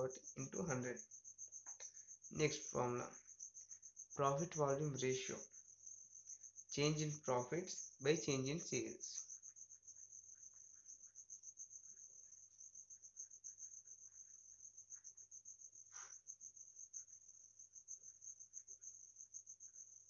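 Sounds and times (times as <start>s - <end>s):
cricket trilling: 0.0s - 20.0s.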